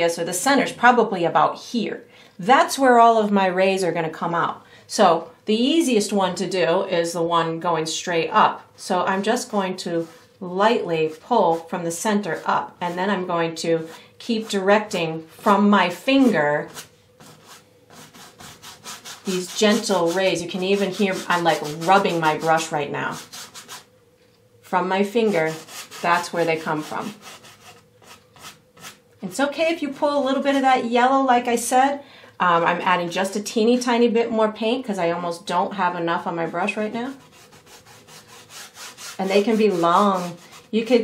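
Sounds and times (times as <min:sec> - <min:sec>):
brush scratching on canvas: 0:09.3 - 0:15.6, 0:16.2 - 0:23.9, 0:25.1 - 0:29.0, 0:36.7 - 0:41.0.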